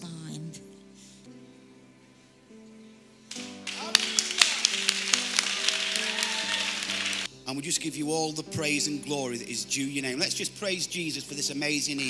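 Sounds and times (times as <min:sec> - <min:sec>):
soft sustained music: 0:00.0 - 0:12.0
crowd applauding: 0:03.3 - 0:07.3
sharp hand claps: 0:03.3 - 0:07.3.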